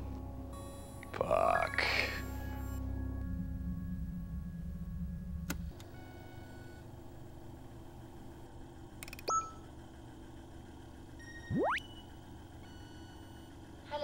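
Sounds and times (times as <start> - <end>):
low background music: 0.0 - 7.3
short beep with upward chirp: 9.3 - 9.6, 11.2 - 12.1
rising electronic tone: 11.5 - 12.0.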